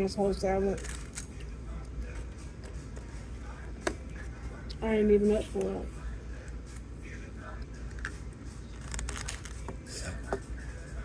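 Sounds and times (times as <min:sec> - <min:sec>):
low room hum: 0:00.0 - 0:11.0
plastic container clicks and crinkles: 0:08.8 - 0:09.8.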